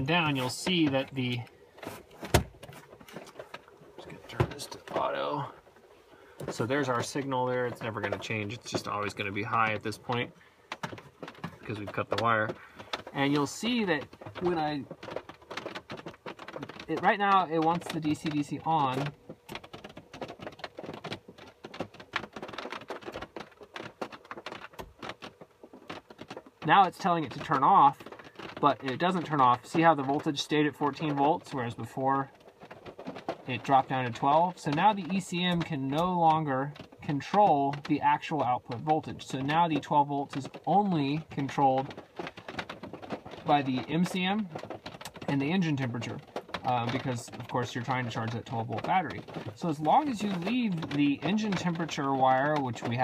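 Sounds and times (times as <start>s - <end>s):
rain pattering: 0.0s - 53.0s
faint ticks of handled equipment: 3.0s - 53.0s.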